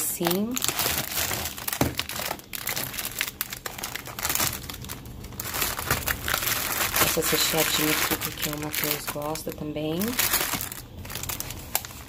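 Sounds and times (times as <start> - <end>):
plastic wrappers crinkling: 0.0 - 12.0.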